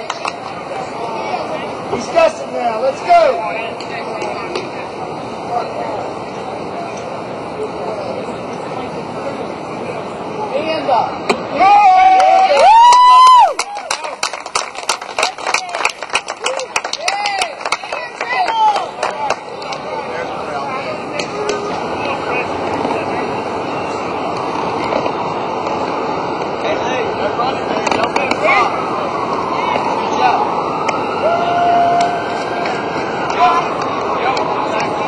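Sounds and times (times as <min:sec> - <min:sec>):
crowd murmur: 0:00.0 - 0:12.7, 0:13.4 - 0:35.0
spectators shouting: 0:11.4 - 0:14.0, 0:29.7 - 0:35.0
rapid clapping: 0:12.2 - 0:19.9.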